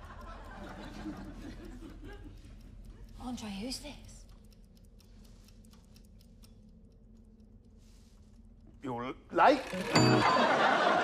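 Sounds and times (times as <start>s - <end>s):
wall clocks ticking: 0.0s - 11.0s.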